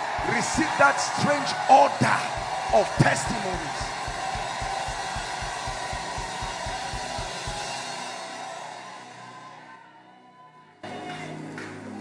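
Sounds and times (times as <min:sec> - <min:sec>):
fast driving drum beat: 0:00.0 - 0:08.1.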